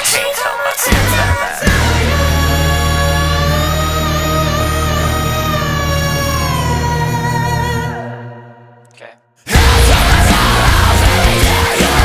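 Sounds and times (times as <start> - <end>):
heavy rock band playing: 0.9 - 4.4, 9.5 - 12.0.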